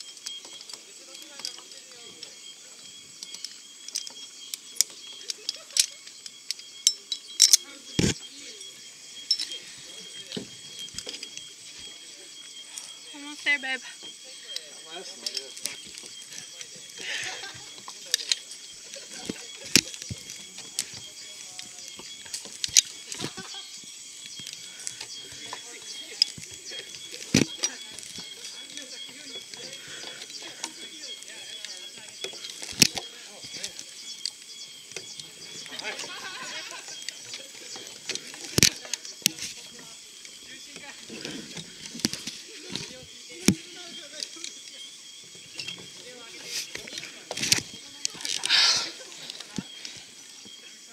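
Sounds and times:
steady high hiss: 0.0s - 50.9s
clicks and knocks of gear and rope: 3.2s - 8.2s, 15.2s - 36.1s, 37.0s - 44.7s, 45.5s - 50.6s.

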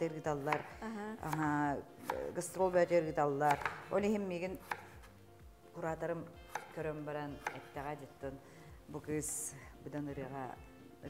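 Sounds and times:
woman talking: 0.0s - 4.7s, 5.8s - 10.6s
knife chopping on cutting board: 0.4s - 2.5s, 3.4s - 5.1s, 6.5s - 7.8s.

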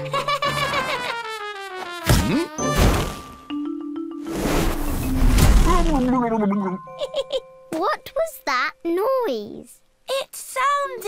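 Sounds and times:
snow sliding rushing noise: 4.3s - 6.0s.

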